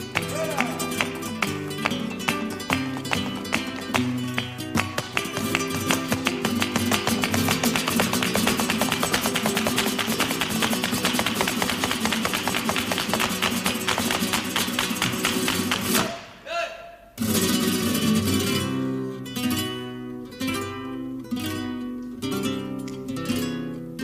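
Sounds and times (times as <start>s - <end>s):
dance shoes striking hard floor: 0.0s - 16.2s
flamenco guitar: 0.0s - 16.4s, 17.2s - 24.0s.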